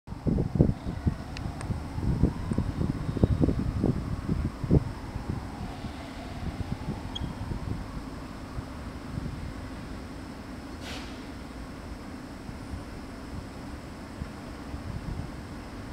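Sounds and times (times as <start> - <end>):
wind buffeting microphone: 0.1 - 10.5, 12.4 - 15.9.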